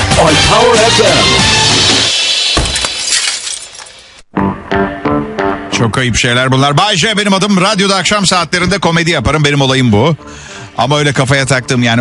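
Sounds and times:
glass shattering: 2.4 - 4.2
tinkles of falling glass pieces: 2.6 - 4.0.

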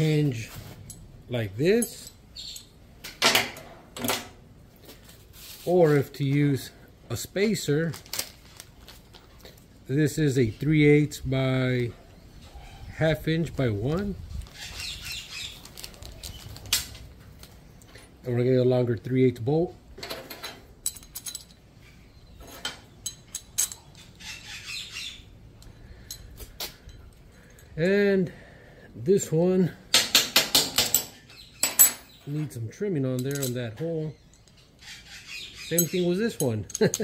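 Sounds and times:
plastic bag rustling: 15.5 - 17.1
metal pieces clinking: 20.3 - 21.6, 22.5 - 24.0, 33.2 - 33.6, 35.7 - 37.0.

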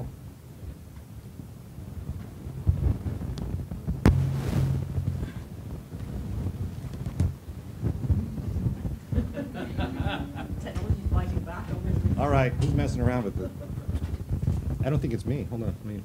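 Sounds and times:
microphone handling noise: 1.8 - 9.4, 10.4 - 15.2
sharp knocks: 4.0 - 5.4.

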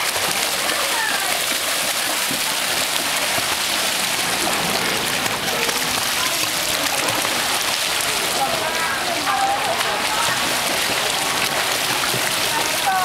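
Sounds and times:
children splashing in pool water: 0.0 - 13.0.

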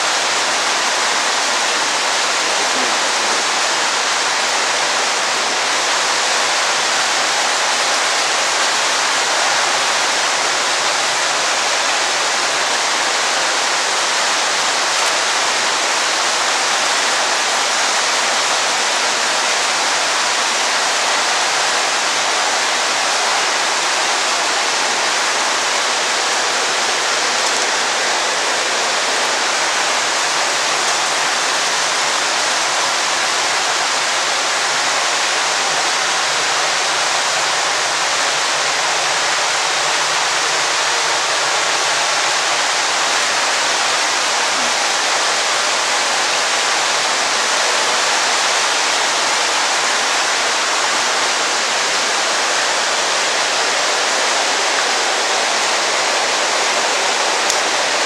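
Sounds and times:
water rushing: 0.0 - 58.0.

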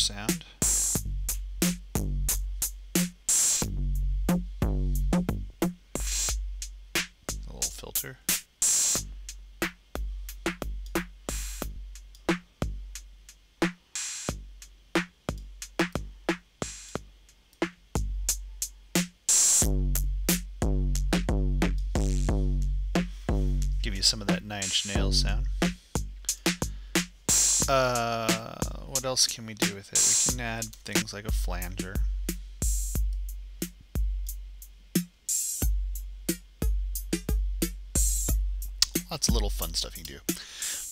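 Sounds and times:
hi-hat ticks: 0.0 - 4.4, 5.0 - 40.9
distorted drum machine beat: 0.0 - 40.9
clap-like snare hit: 38.8 - 39.1.

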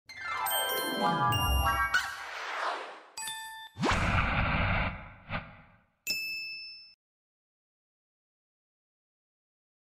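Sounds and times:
bright chime: 0.3 - 2.0
rising whoosh with low rumble: 3.8 - 5.8
bell-like ding: 6.1 - 7.0.

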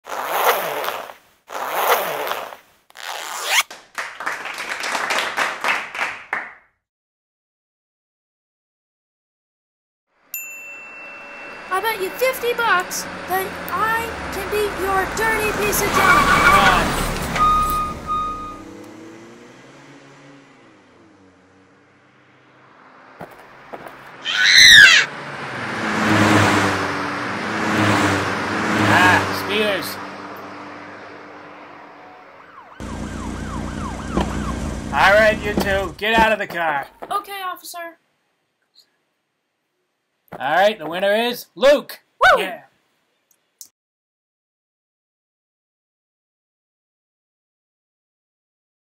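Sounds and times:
zipper pulled open: 0.0 - 3.7
race car engine humming: 11.2 - 24.3, 24.9 - 36.3
high-pitched screech: 11.4 - 18.4, 24.2 - 25.1.

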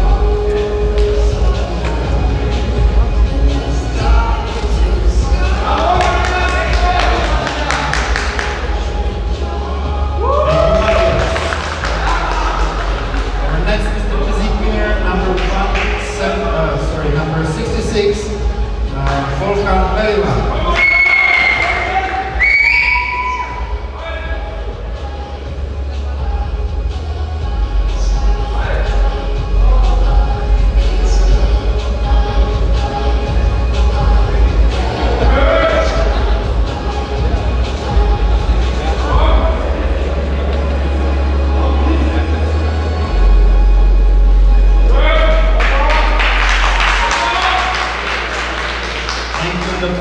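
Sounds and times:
low bass music: 0.0 - 50.0
audience clapping fast: 5.7 - 8.9, 10.5 - 13.5, 15.3 - 16.1, 45.5 - 50.0
people shouting: 20.6 - 24.4
shrill whistles from audience: 20.7 - 23.7.

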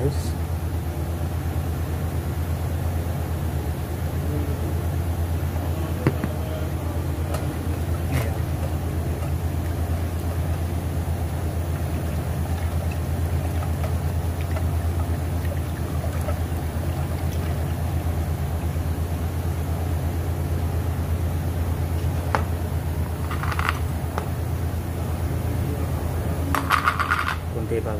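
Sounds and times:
low machine hum: 0.0 - 27.9.

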